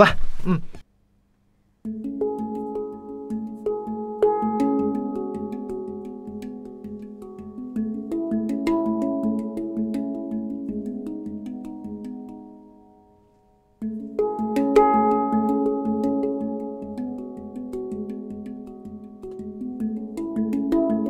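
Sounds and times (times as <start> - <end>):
handpan melody: 1.8 - 21.0.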